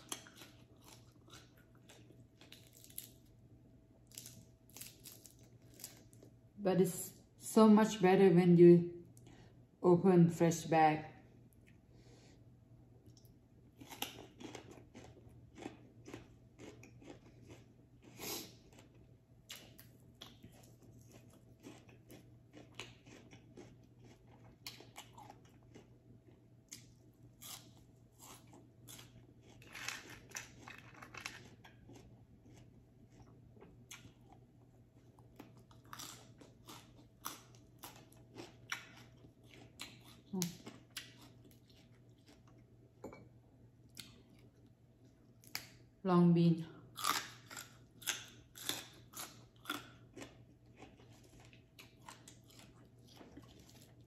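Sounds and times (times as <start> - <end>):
person chewing crunchy greens: 0.0 - 3.4, 4.0 - 6.4, 13.0 - 42.8, 46.9 - 54.0.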